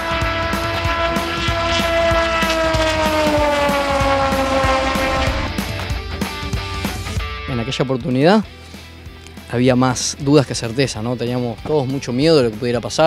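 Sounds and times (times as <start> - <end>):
rock music with steady beat: 0.0 - 7.9
race car engine passing by: 0.2 - 6.0.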